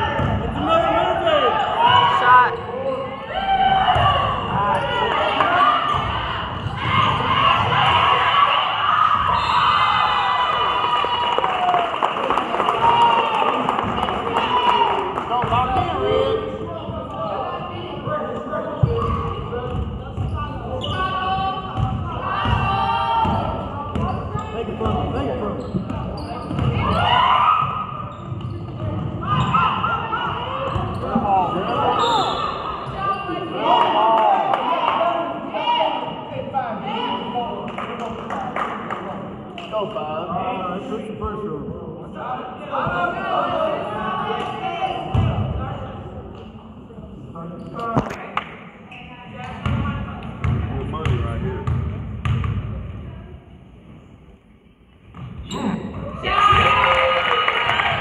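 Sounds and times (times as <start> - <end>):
voices calling and talking: 13.1 - 51.9.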